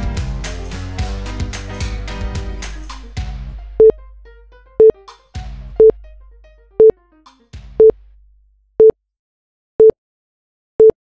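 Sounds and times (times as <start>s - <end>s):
music chords: 0.0s - 7.6s.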